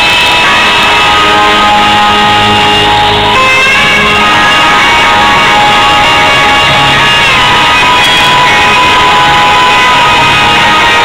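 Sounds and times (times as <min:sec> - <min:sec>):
electric guitar holding a long note: 0:00.0 - 0:11.0
rock band playing live: 0:00.3 - 0:11.0.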